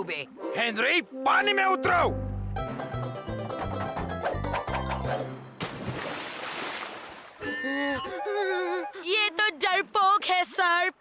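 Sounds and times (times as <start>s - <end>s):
bouncy cartoon music: 1.1s - 5.6s
person jumping into pool splash: 5.6s - 7.4s.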